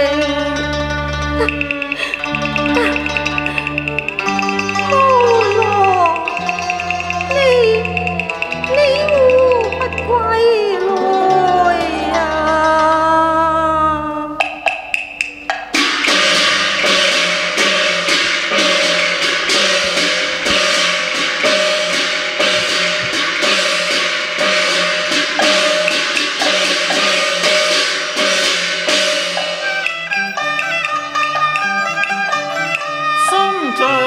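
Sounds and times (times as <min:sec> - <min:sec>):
opera accompaniment band: 0:00.0 - 0:34.0
wood-block strikes: 0:01.4 - 0:13.0, 0:14.4 - 0:34.0.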